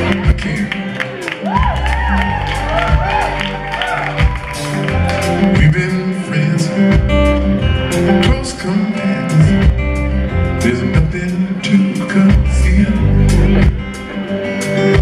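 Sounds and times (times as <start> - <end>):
deep bass line: 0.0 - 14.1
amplified acoustic guitar: 0.0 - 15.0.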